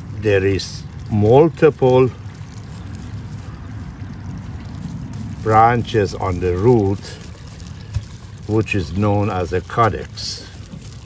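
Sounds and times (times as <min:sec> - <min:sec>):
potting soil crumbling and rustling: 0:00.0 - 0:11.0
wind rumble on microphone: 0:00.0 - 0:11.0.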